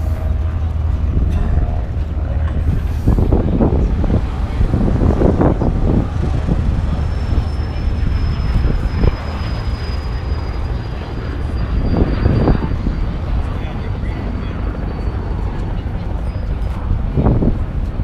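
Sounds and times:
aircraft engines droning: 0.0 - 18.0
people talking: 0.0 - 18.0
faint high whine: 6.9 - 17.0.

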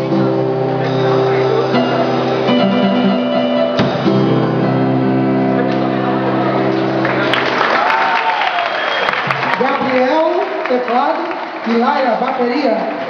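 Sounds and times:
live band holding a chord: 0.0 - 8.1
crowd noise and voices: 0.0 - 13.0
drum hit: 3.8 - 4.4.

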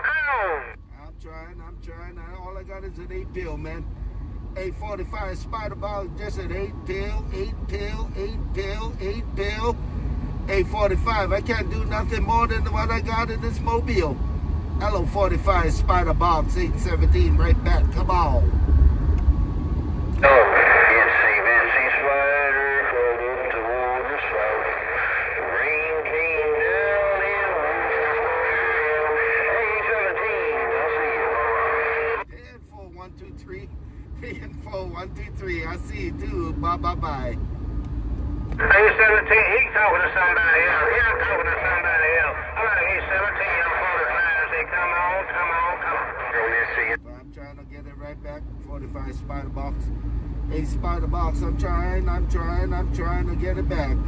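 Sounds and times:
hissy distorted radio signals: 0.0 - 0.8, 20.2 - 32.2, 38.6 - 47.0
tinny radio voices: 0.0 - 0.8, 20.2 - 32.2, 38.6 - 47.0.

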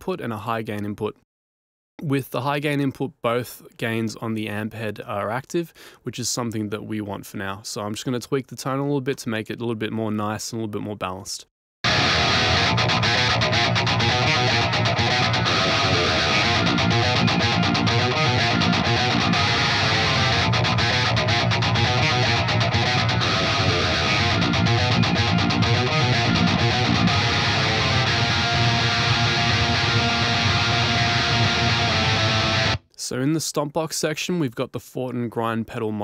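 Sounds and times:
distorted metal guitar riff: 11.8 - 32.8.

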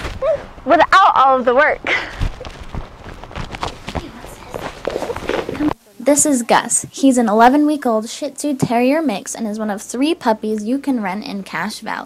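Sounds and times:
puppy running: 2.0 - 5.8
footsteps on hardwood floor: 2.1 - 5.8
faint indistinct voices: 3.8 - 6.1.

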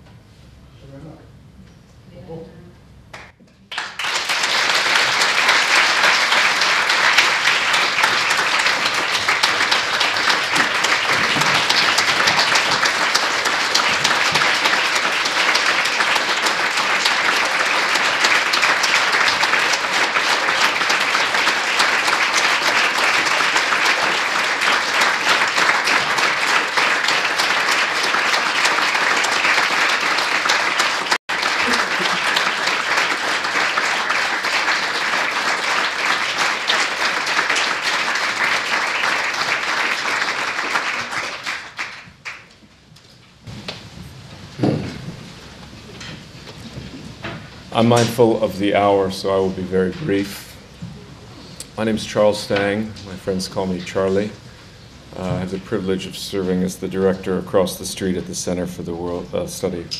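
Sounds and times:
audience applauding: 3.2 - 42.7.

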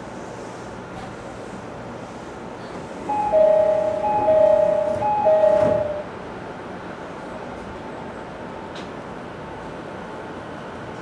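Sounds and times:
train humming: 0.0 - 11.0
train doors sliding shut: 0.6 - 6.1, 8.7 - 9.0
two-note door chime: 3.1 - 6.1.

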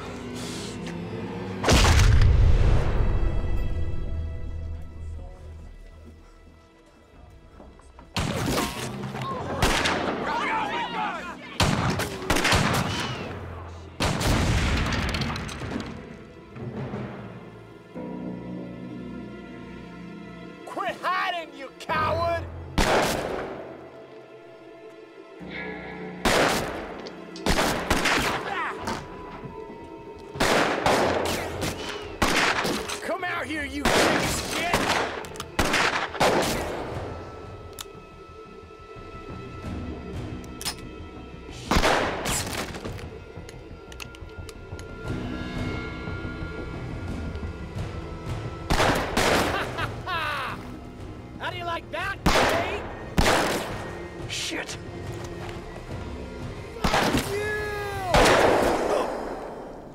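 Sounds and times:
dramatic film score: 0.0 - 59.9
gunshots with ringing echo: 22.8 - 23.5, 26.1 - 28.4, 30.4 - 32.9, 33.8 - 37.0, 48.7 - 49.6, 52.2 - 53.9, 58.1 - 59.8.

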